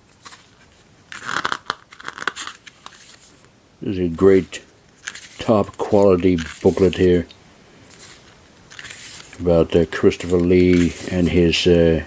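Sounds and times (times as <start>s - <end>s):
paper pages flipping: 0.0s - 3.5s, 4.2s - 11.7s.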